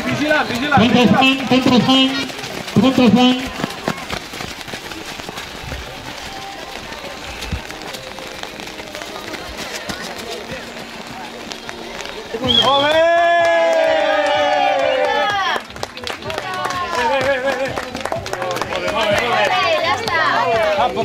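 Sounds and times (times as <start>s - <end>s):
small running footsteps: 0.0s - 21.0s
faint background voices: 3.4s - 12.6s.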